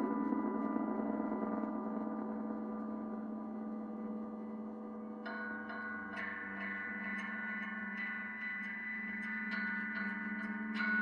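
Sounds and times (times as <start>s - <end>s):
electric guitar drone: 0.0s - 11.0s.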